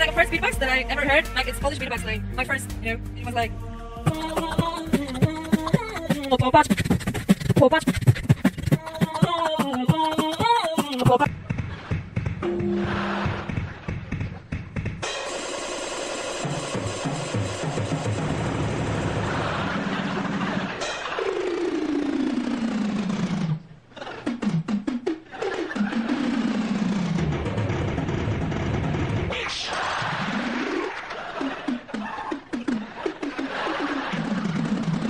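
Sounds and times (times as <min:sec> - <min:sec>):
drum kit rolls and fills: 0:04.1 - 0:22.8, 0:26.0 - 0:29.3.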